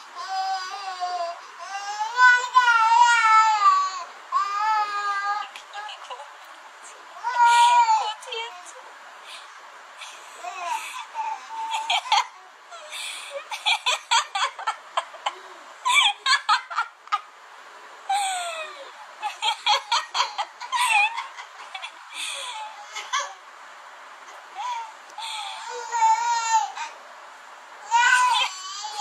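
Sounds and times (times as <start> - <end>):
baby crying: 0.2 - 5.6, 7.2 - 8.6, 10.4 - 13.0, 24.6 - 27.0, 27.8 - 29.0
baby giggling: 10.0 - 17.2, 18.1 - 23.4.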